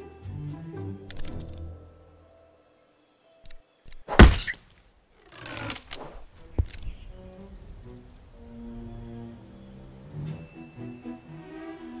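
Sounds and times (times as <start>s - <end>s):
cartoon impact thud: 4.1s - 4.6s.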